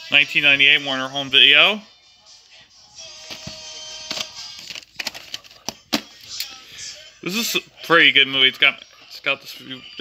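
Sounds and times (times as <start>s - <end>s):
plastic case clicks: 3.3s - 6.1s
cassette clattering: 3.3s - 6.2s.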